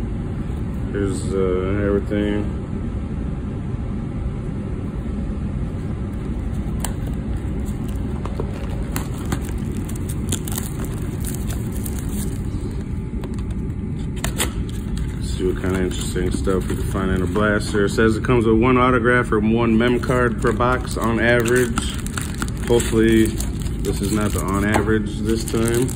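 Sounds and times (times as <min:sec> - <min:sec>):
steady low rumble: 0:00.0 - 0:25.9
plastic wrap and cardboard tearing: 0:06.4 - 0:12.8, 0:14.2 - 0:17.9, 0:19.7 - 0:25.9.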